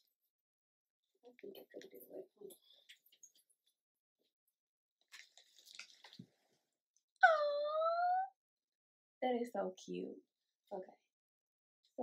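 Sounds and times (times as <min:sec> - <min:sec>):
rustling and handling noises: 0:05.1 - 0:06.7
woman's high-pitched ooh: 0:07.2 - 0:08.4.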